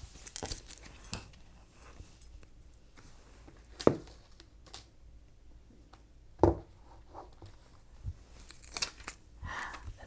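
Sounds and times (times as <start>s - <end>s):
plastic crinkle: 0.0s - 2.0s, 8.3s - 9.9s.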